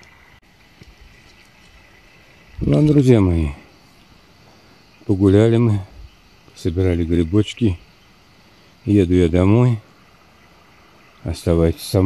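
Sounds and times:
faint steady background hiss: 0:00.0 - 0:12.0
faint ticks: 0:03.9 - 0:04.2.

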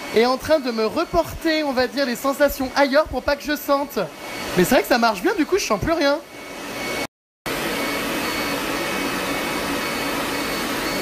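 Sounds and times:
cooling air blower whoosh: 0:00.0 - 0:11.0.

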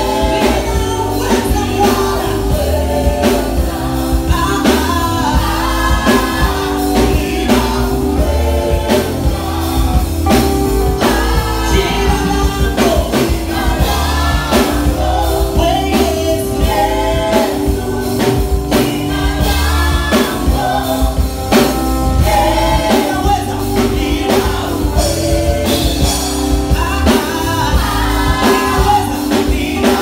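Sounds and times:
bass and keyboard tones: 0:00.0 - 0:30.0
drum-kit beat: 0:00.0 - 0:30.0
group singing worship song: 0:00.0 - 0:30.0.

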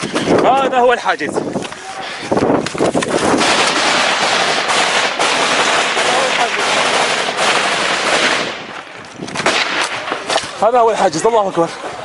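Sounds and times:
automatic gunfire: 0:03.2 - 0:08.7, 0:09.4 - 0:10.5.

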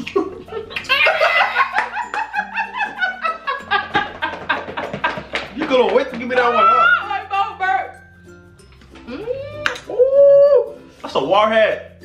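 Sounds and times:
person wailing high-pitched: 0:06.4 - 0:07.2.

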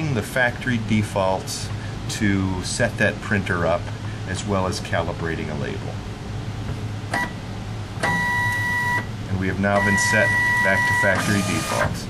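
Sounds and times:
printer humming: 0:07.0 - 0:12.0
printer beep: 0:07.1 - 0:07.4, 0:08.0 - 0:09.1, 0:09.7 - 0:12.0.

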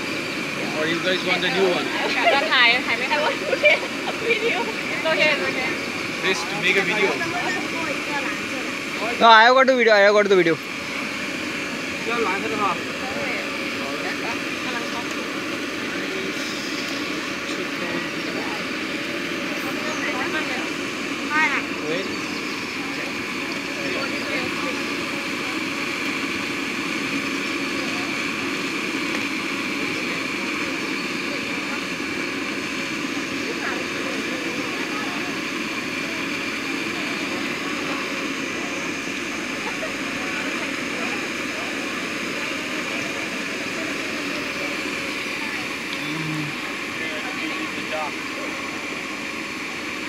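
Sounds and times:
cotton candy machine whirring hum: 0:00.0 - 0:50.0.

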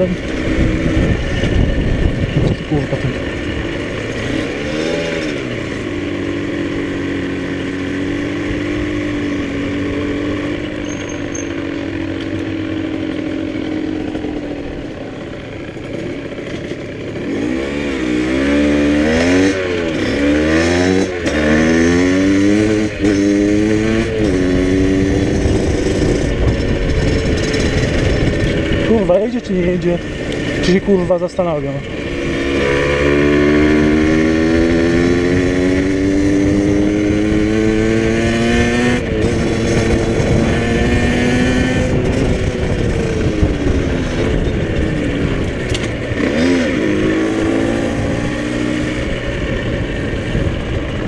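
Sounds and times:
wind rushing on microphone: 0:00.0 - 0:03.8, 0:22.4 - 0:31.1, 0:31.7 - 0:51.0
motorcycle engine revving: 0:00.0 - 0:51.0.

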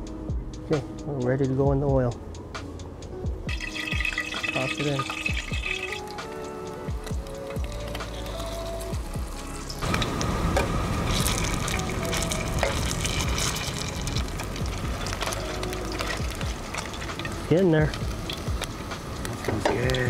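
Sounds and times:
fish balls frying in oil: 0:03.5 - 0:20.0.

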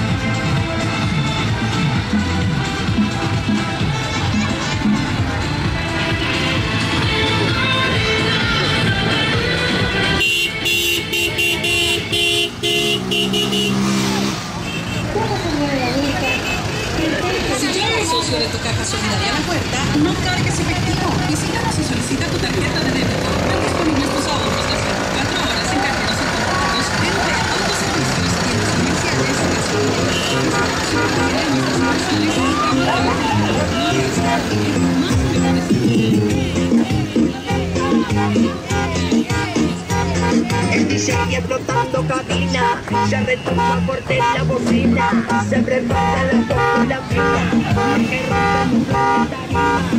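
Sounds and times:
loudspeaker music: 0:00.0 - 0:14.4, 0:17.0 - 0:49.9
passing vehicles: 0:00.0 - 0:49.9
horn tune: 0:10.1 - 0:14.8, 0:28.8 - 0:36.3, 0:38.1 - 0:49.9
people shouting: 0:31.1 - 0:34.5.

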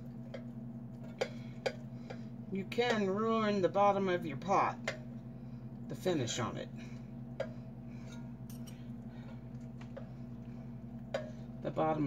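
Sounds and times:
steady low hum: 0:00.0 - 0:12.0
cutlery scraping in a pot: 0:08.0 - 0:08.8.

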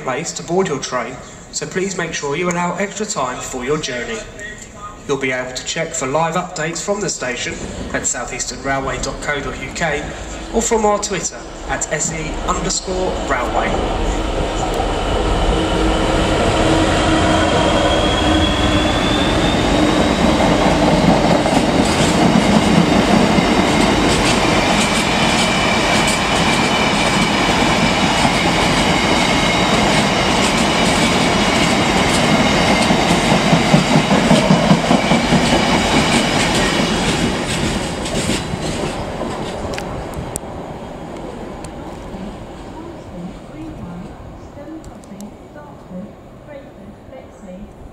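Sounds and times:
freight train rumble: 0:00.0 - 0:47.9
high wheel squeal: 0:12.7 - 0:20.4.

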